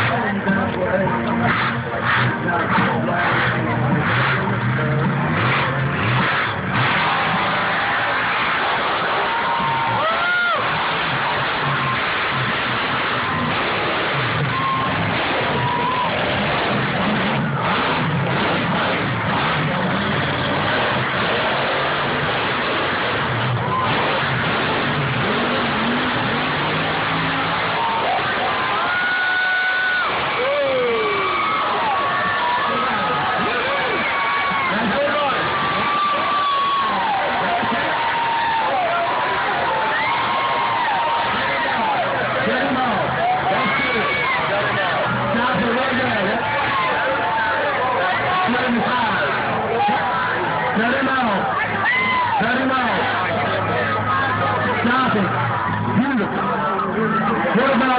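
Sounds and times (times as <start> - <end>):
crowd noise: 0.0 - 57.9
crowd shouting and cheering: 0.0 - 57.9
truck engine revving: 0.0 - 57.9.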